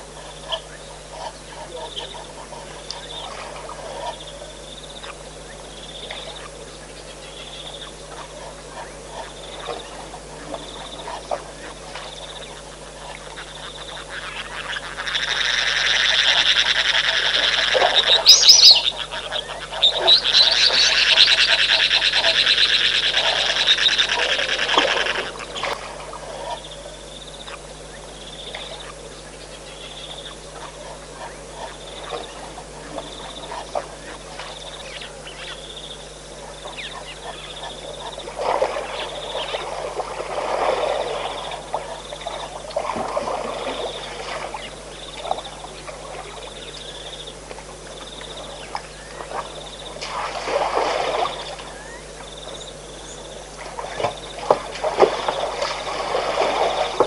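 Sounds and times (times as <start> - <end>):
high pulsed animal trills: 0.0 - 50.0
wildlife calls: 0.0 - 57.0
chorus of pulsing calls: 7.1 - 27.8.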